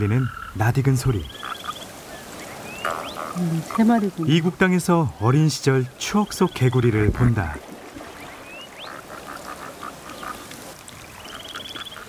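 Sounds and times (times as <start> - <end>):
frogs croaking: 0.0 - 12.0.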